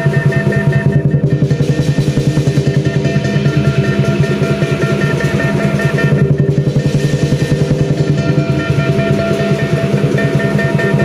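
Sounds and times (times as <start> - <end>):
cymbals ringing: 0.0 - 11.0
drum beating: 0.0 - 11.0
gong ringing: 0.0 - 11.0.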